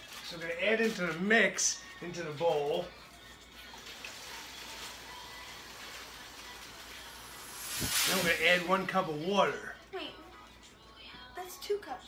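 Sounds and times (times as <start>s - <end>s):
cake mix pouring into plastic bowl: 1.5s - 9.2s.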